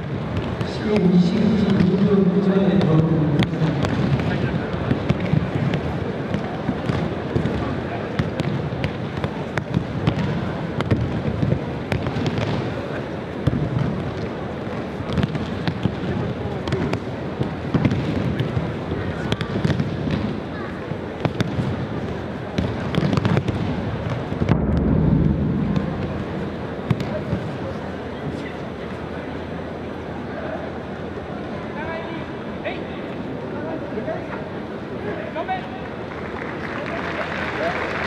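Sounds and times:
murmur of a large hall: 0.0 - 38.0.

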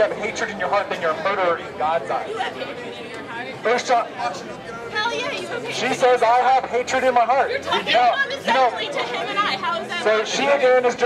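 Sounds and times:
people arguing: 0.0 - 11.0.

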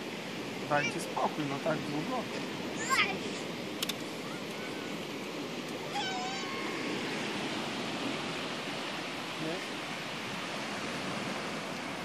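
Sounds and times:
sea surf breaking on beach: 0.0 - 12.0.

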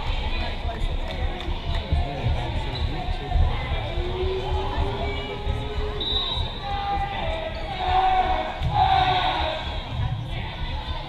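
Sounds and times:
dull low thuds: 0.0 - 11.0
spectators shouting in gym: 0.0 - 11.0.

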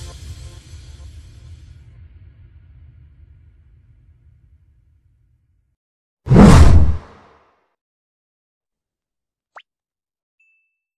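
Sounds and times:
loud whoosh: 6.3 - 7.2.

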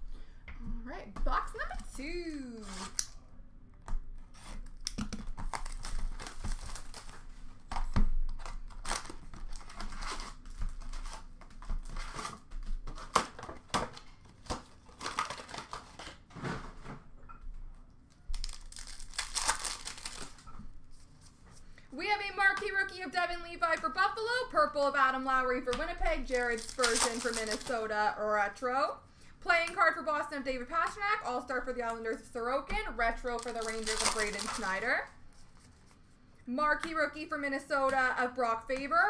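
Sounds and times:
foil packs crinkling: 4.8 - 16.3, 18.3 - 20.4, 26.2 - 27.9, 33.2 - 35.0.

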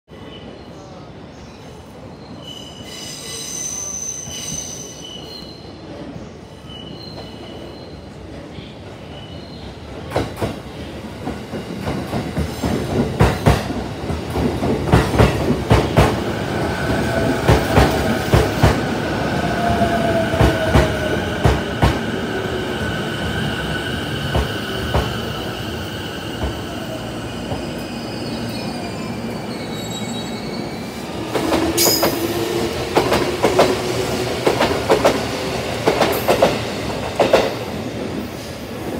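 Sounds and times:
high brake squeal: 2.1 - 5.8, 6.5 - 8.1, 27.8 - 31.0.

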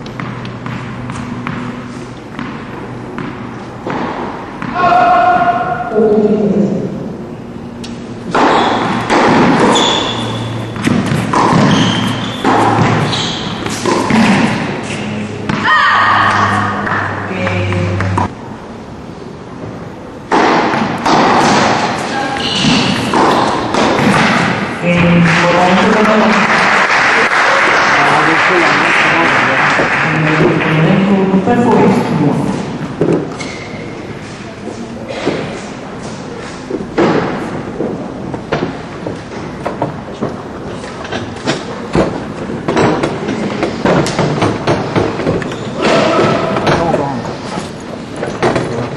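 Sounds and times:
tennis ball struck by rackets: 0.0 - 5.5, 7.8 - 18.3, 20.3 - 24.7
steady murmur: 5.4 - 48.9.

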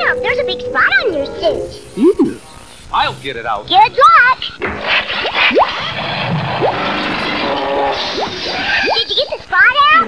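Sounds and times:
held musical tones: 0.0 - 3.9
rushing bubbling noise: 5.1 - 9.2.

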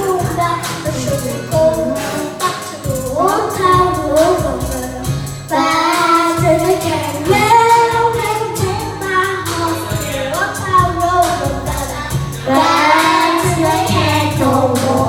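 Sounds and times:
child singing into microphone: 0.0 - 15.0
pop backing track: 0.0 - 15.0.

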